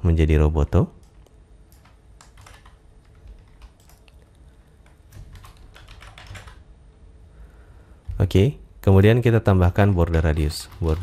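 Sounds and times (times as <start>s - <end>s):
computer keyboard typing: 1.0s - 6.6s, 9.7s - 11.0s.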